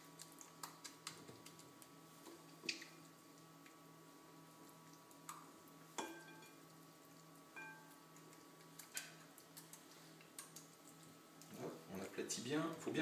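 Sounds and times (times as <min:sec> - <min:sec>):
spoon knocking glass bowl: 0:06.0 - 0:06.6, 0:07.6 - 0:07.9.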